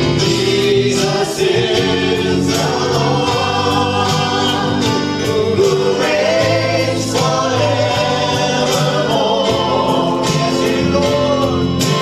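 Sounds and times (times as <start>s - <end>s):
choir singing: 0.0s - 12.0s
instrumental accompaniment: 0.0s - 12.0s.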